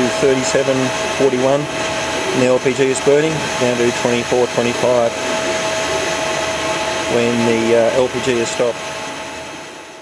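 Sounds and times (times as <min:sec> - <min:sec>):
machinery whirring hum: 0:00.0 - 0:10.0.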